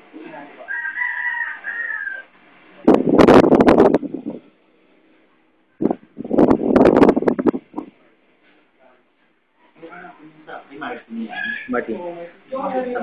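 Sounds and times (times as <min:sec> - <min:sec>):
rooster crowing: 0:00.6 - 0:02.4, 0:11.3 - 0:11.8.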